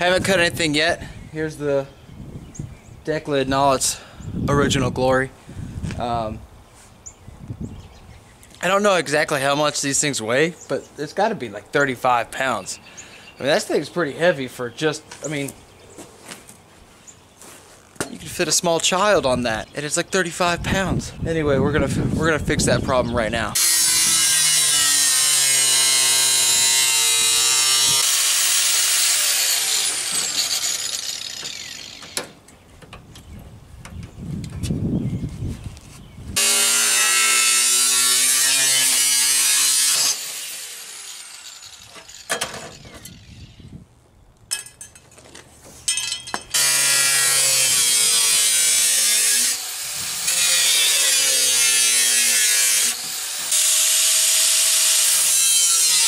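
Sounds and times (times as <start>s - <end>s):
angle grinder cutting steel: 23.6s - 32.2s, 36.4s - 43.5s, 46.5s - 56.0s.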